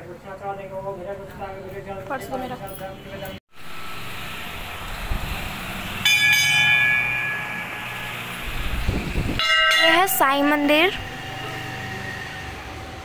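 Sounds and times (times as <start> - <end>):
temple bell ringing: 5.7 - 13.0.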